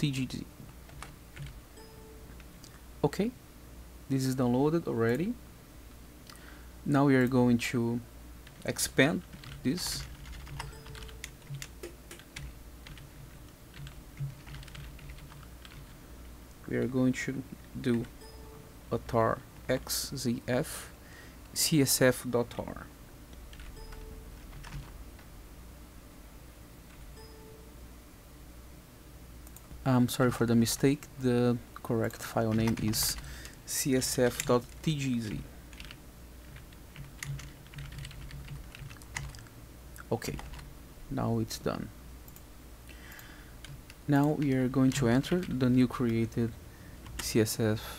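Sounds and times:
low steady hum: 0:00.0 - 0:47.9.

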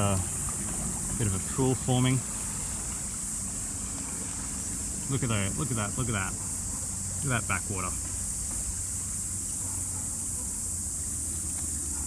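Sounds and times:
creek rushing: 0:00.0 - 0:10.2
high insect buzz: 0:01.9 - 0:12.0.

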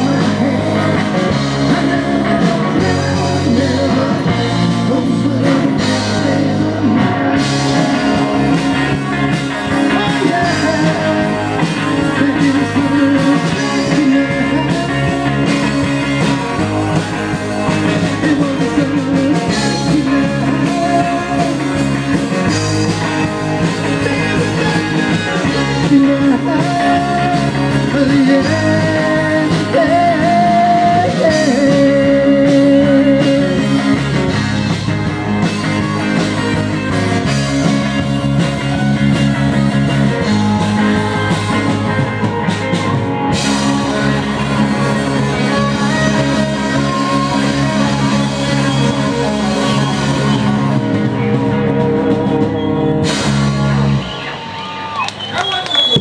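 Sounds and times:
live rock band playing: 0:00.0 - 0:56.0
shouts and voices: 0:00.0 - 0:56.0.

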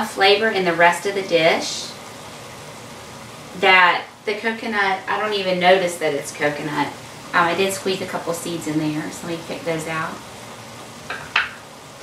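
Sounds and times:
food sizzling in a skillet: 0:00.0 - 0:12.0.

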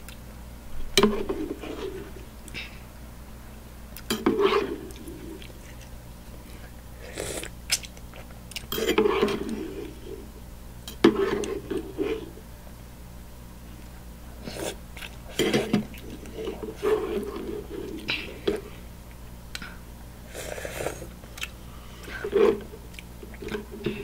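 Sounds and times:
person chewing: 0:04.8 - 0:09.0, 0:13.8 - 0:16.4, 0:19.1 - 0:22.3
person slurping noodles: 0:07.0 - 0:07.6, 0:20.3 - 0:21.1.

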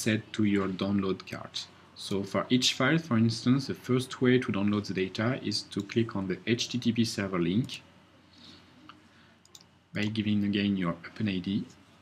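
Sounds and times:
person speaking: 0:00.0 - 0:07.9, 0:09.9 - 0:11.8
soft breath in: 0:08.2 - 0:09.4
faint sharp clicks: 0:08.9 - 0:09.7.

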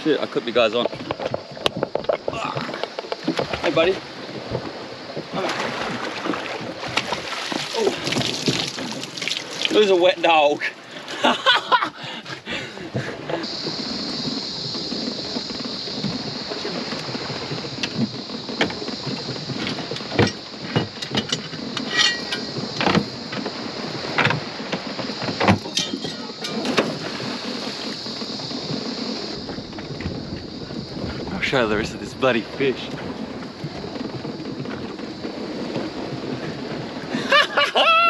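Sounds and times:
steady high-pitched hiss: 0:00.0 - 0:38.0
knocks of gear on boat deck: 0:17.7 - 0:23.5, 0:24.1 - 0:27.1.

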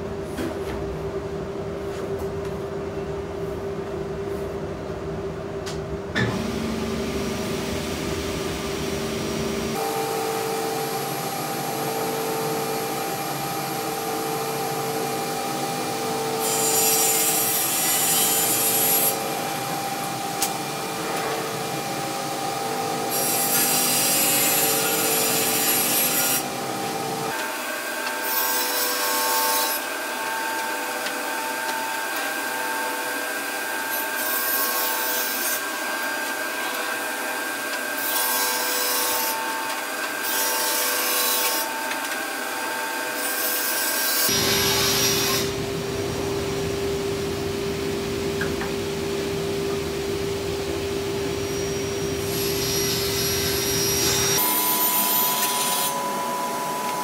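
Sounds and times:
table saw motor running: 0:06.3 - 0:45.8, 0:50.6 - 0:57.0
saw blade cutting board: 0:16.1 - 0:21.6, 0:23.0 - 0:45.6, 0:51.6 - 0:57.0.

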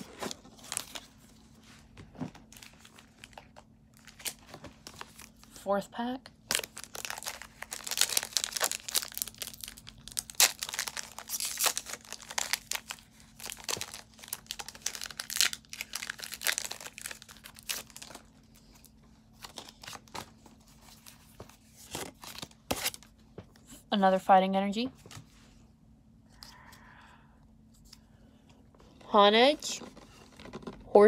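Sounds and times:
foil wrapper tearing and crinkling: 0:06.5 - 0:18.3.

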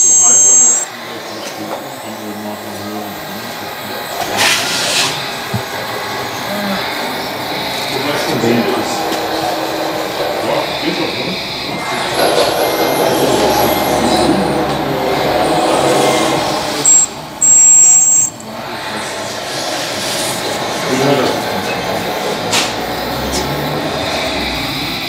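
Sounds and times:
loud high-pitched tone: 0:00.0 - 0:00.9, 0:13.2 - 0:18.6
indistinct voices: 0:00.0 - 0:25.0.

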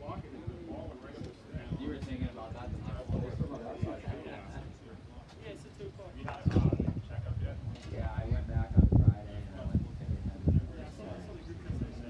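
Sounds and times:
men calling out and talking: 0:00.0 - 0:12.0.

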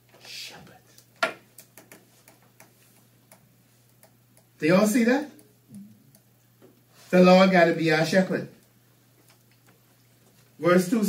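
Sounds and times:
faint steady hum: 0:00.0 - 0:11.0
light irregular ticks and clicks: 0:00.1 - 0:07.0, 0:08.5 - 0:10.5.

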